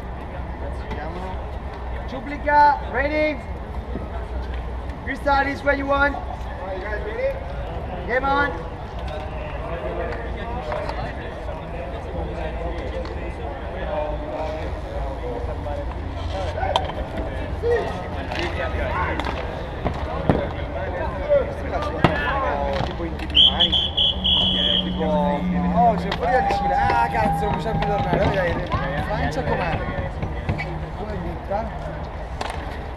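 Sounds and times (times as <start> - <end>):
players shouting and calling: 1.7 - 32.9
high steady tone: 23.4 - 28.0
steady low rumble: 23.7 - 32.9.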